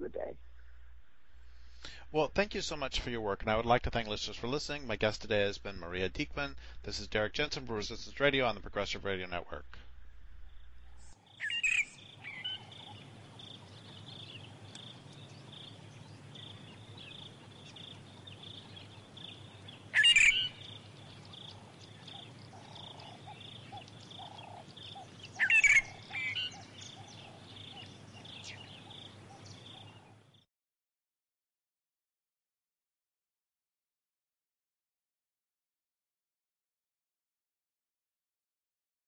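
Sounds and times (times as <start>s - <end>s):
faint lower bird calls: 11.2s - 30.4s
loud bird calls: 11.3s - 30.3s.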